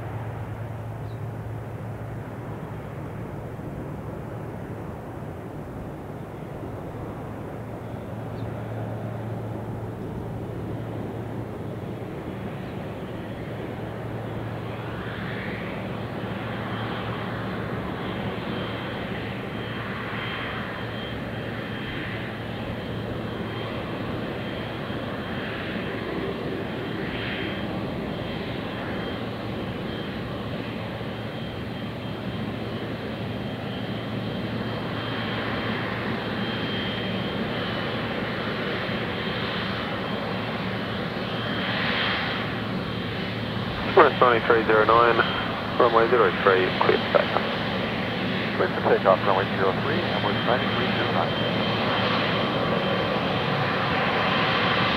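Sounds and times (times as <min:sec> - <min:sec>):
jet engine whine and drone: 0:00.0 - 0:54.9.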